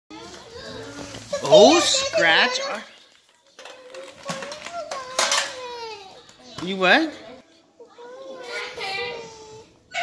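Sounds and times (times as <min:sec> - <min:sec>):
metal tins clattering: 0:03.6 - 0:05.9.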